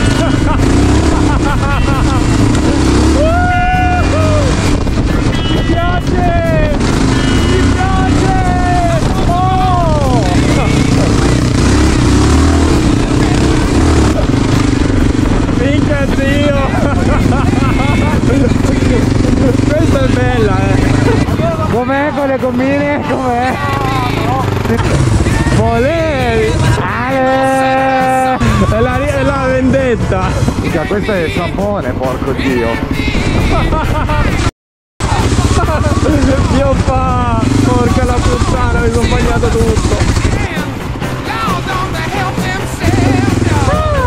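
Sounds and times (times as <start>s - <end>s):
motorcycle engine running: 0.0s - 44.0s
voices calling out: 0.0s - 44.0s.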